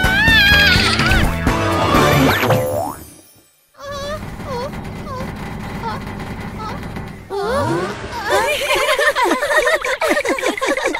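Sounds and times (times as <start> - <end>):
cartoon music: 0.0 - 3.0.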